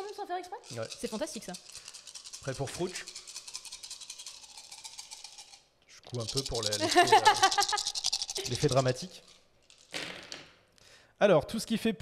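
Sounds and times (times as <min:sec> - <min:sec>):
dice rattling in hands: 0:00.0 - 0:10.6.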